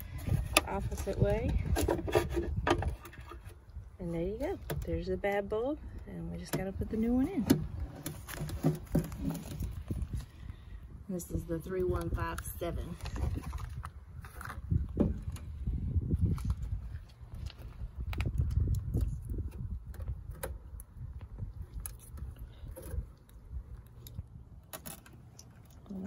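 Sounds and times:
low rumbling handling noise: 0.0s - 10.7s, 11.4s - 26.0s.

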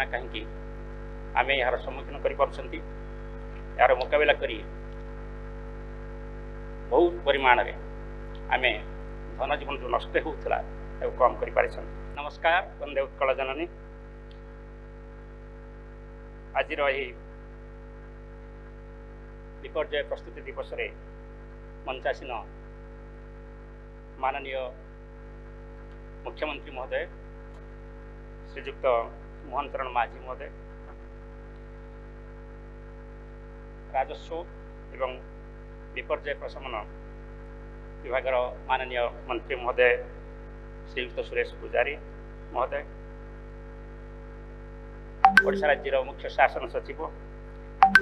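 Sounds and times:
man speaking through microphones: 0.0s - 0.5s, 1.4s - 2.8s, 3.8s - 4.6s, 6.9s - 7.8s, 8.5s - 8.8s, 9.4s - 13.7s, 16.6s - 17.1s, 19.7s - 20.9s, 21.9s - 22.4s, 24.2s - 24.8s, 26.3s - 27.1s, 28.6s - 30.5s, 34.0s - 34.4s, 35.0s - 35.2s, 36.0s - 36.8s, 38.1s - 40.0s, 41.0s - 42.0s, 42.6s - 42.8s, 45.4s - 47.1s
electrical mains hum: 0.0s - 29.8s.

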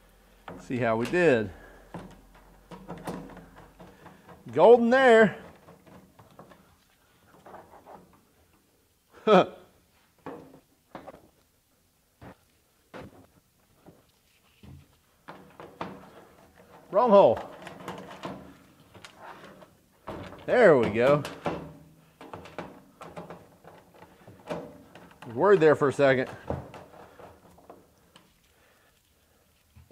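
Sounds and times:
man's voice: 0.6s - 1.6s, 4.5s - 5.5s, 20.5s - 21.3s.

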